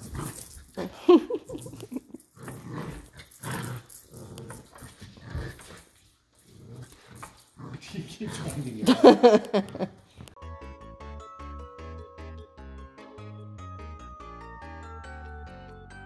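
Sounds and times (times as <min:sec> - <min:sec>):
puppy growling: 0:00.0 - 0:09.2.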